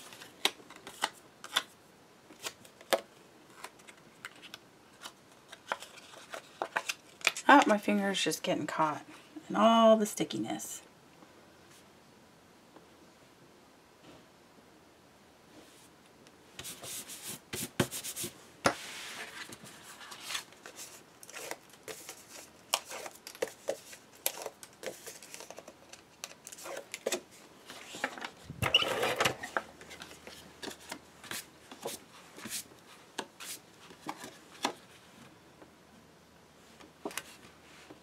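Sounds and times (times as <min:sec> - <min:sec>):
paper sliding and rustling: 0:16.6 - 0:25.6.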